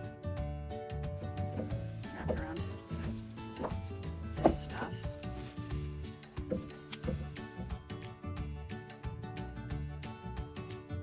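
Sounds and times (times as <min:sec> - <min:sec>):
background music sustained notes: 0:00.0 - 0:11.0
dry grass rustling and crackling: 0:01.1 - 0:07.8.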